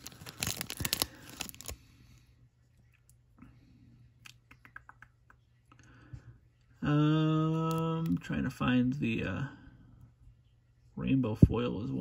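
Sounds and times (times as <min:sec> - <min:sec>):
plastic wrapper crinkling: 0:00.0 - 0:01.8.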